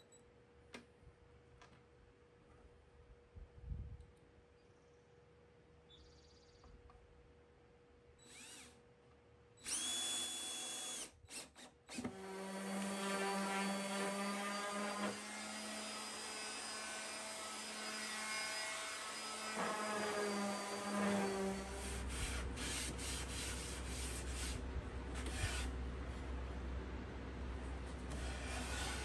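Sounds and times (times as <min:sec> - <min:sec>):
cordless drill driving a screw: 0:08.2 - 0:08.8, 0:09.6 - 0:22.9
orbital sander on wood: 0:12.2 - 0:24.6.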